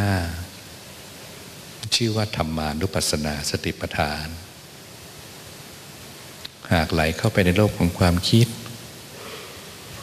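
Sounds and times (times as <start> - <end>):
man speaking into microphone: 0.0 - 0.6, 1.8 - 4.5, 6.5 - 8.8
steady recording hiss: 0.0 - 10.0.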